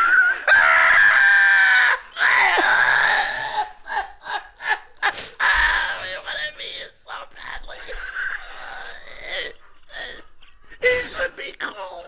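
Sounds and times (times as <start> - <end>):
men laughing hard: 2.3 - 5.7.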